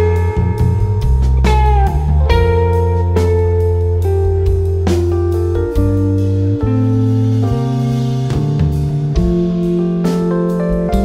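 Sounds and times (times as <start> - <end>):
drum kit: 0.0 - 11.0
electric guitars and bass: 0.0 - 11.0.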